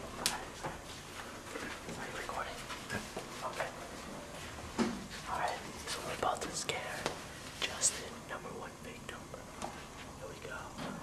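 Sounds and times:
person whispering: 0.2 - 0.6, 1.6 - 3.8, 5.2 - 11.0.

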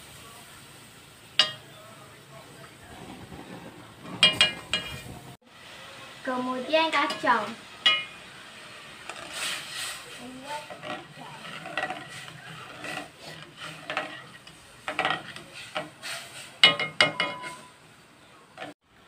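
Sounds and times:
ladle stirring gravy: 2.3 - 5.4, 6.9 - 17.8, 18.5 - 18.8.

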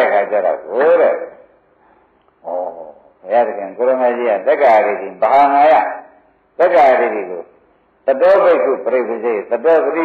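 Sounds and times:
man speaking: 0.0 - 1.5, 2.4 - 10.0.

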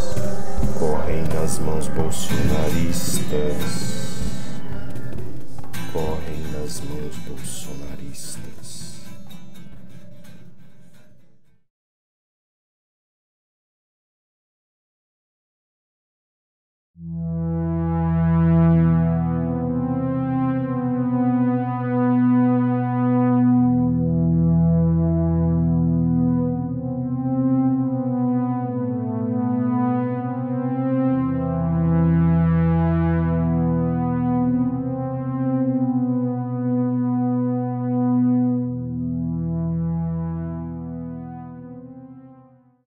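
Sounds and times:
synthesizer drone: 0.0 - 11.4, 17.0 - 42.6.

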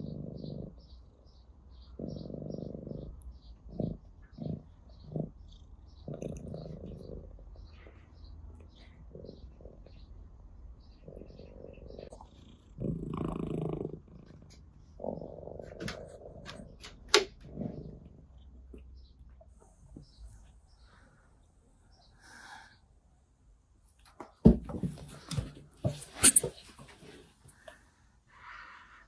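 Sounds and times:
cat purring: 0.0 - 1.0, 1.9 - 8.0, 11.0 - 16.8.

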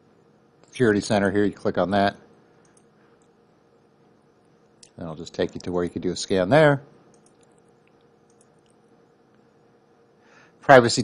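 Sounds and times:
computer mouse clicks: 2.6 - 3.4, 7.1 - 8.8.

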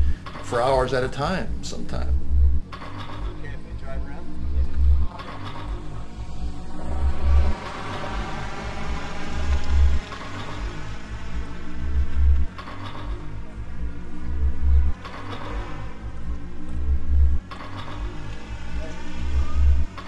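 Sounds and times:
heavy low pulse: 0.0 - 20.0
layered electronic drone: 0.0 - 20.0.

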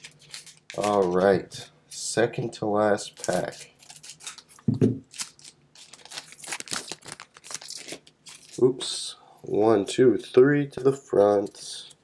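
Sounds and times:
foil pack tearing and crinkling: 0.0 - 1.2, 3.2 - 8.6.

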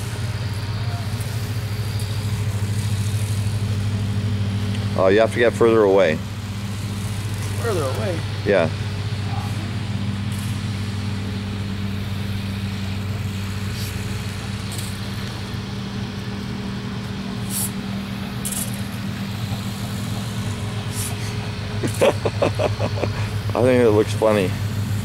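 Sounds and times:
outdoor noise: 0.0 - 25.0
steady low hum: 0.0 - 25.0.

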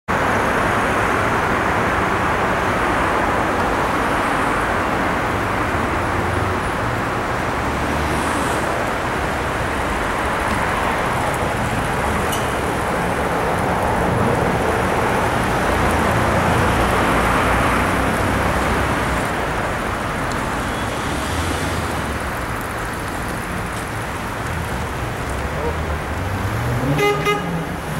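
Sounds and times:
cars passing on street: 0.1 - 27.9.

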